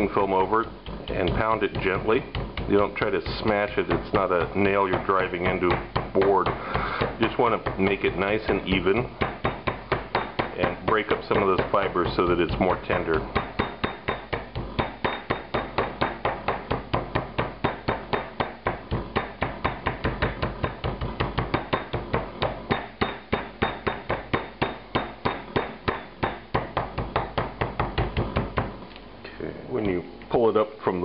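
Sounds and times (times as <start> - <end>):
meat mallet pounding steak on board: 0.0 - 28.8.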